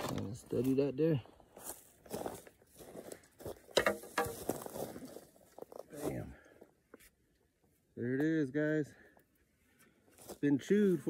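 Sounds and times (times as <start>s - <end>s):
brush and twigs rustling: 0.0s - 8.2s, 9.0s - 11.0s
antler scraping knocks: 3.7s - 4.5s.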